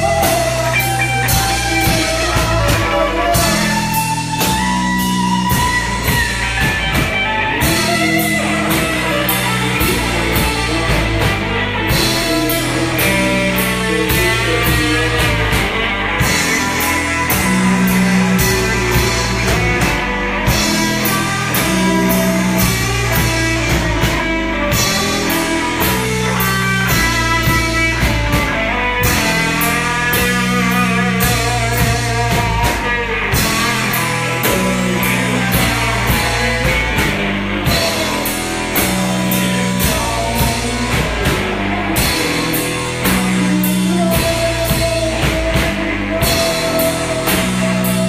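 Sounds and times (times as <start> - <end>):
drum kit: 0.0 - 48.0
electric guitar riff: 0.0 - 48.0.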